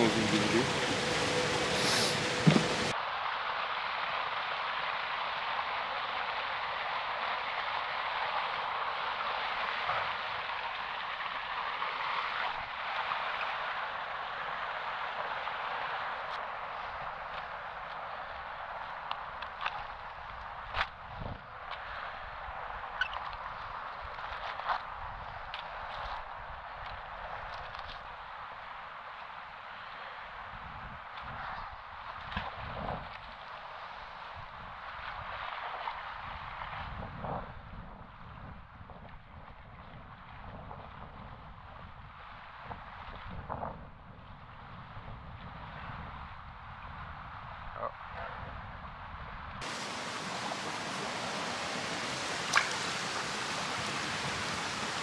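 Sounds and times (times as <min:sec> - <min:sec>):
river water rushing: 0:00.0 - 0:20.8, 0:49.6 - 0:55.0.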